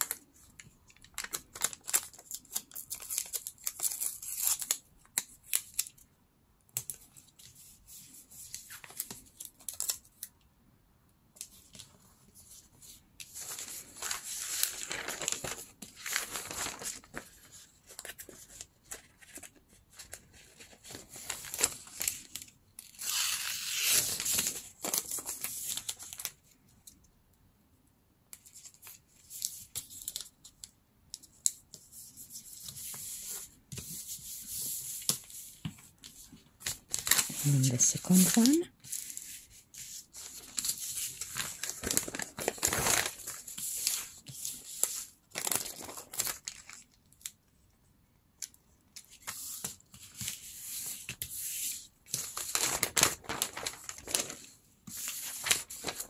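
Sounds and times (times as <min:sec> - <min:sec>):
paper crackling and rustling: 0:00.0 - 0:06.0, 0:06.8 - 0:10.3, 0:11.4 - 0:26.6, 0:28.4 - 0:47.4, 0:48.4 - 0:56.0.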